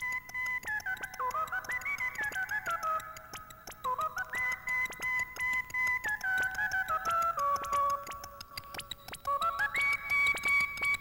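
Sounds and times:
ticking beat: 0.0 - 11.0.

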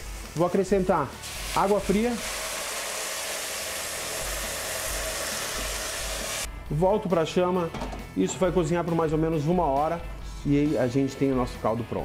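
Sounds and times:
tap water running into pot: 1.2 - 6.5.

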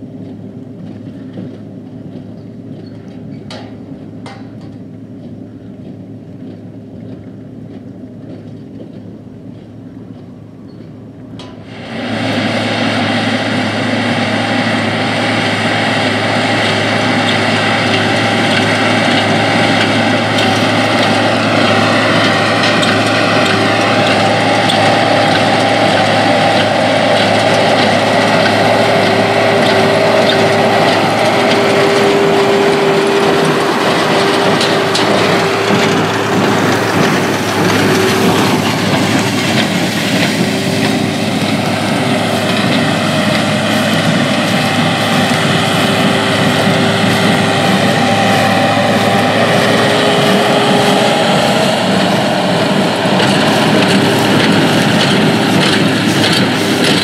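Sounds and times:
baler machinery running: 0.0 - 57.0
tractor engine running under load: 0.0 - 57.0.

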